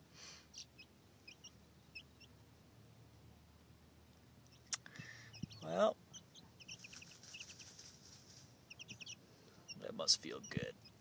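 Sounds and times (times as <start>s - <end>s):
chicks peeping: 0.3s - 2.5s, 4.1s - 11.0s.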